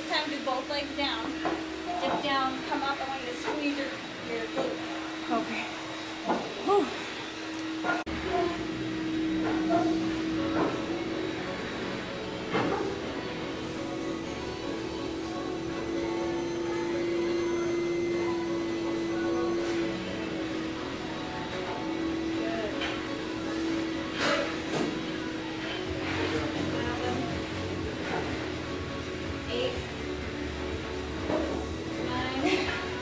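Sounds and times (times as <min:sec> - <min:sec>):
steady hum: 0:00.0 - 0:33.0
music with long held tone: 0:07.3 - 0:33.0.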